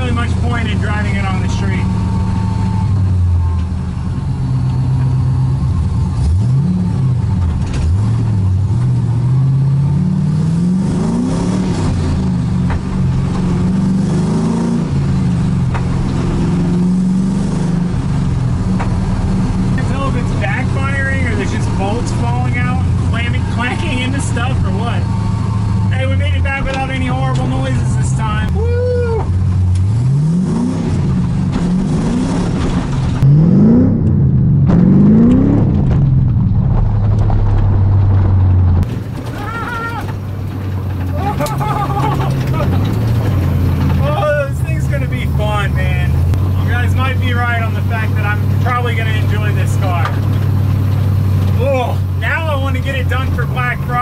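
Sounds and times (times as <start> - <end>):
car engine revving through gears: 0.0 - 28.3, 29.3 - 54.0.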